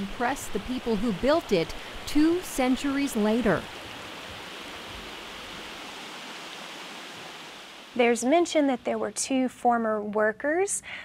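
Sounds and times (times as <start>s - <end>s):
creek water running over rocks: 0.0s - 8.8s.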